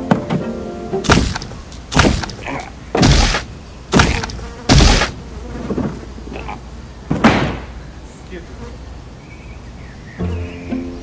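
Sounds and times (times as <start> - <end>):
heavy hit sound effects: 3.0 - 5.2.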